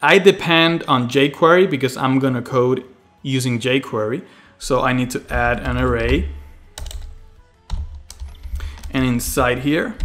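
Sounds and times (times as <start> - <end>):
soft background music: 0.0 - 10.0
keystrokes on computer keyboard: 5.3 - 10.0.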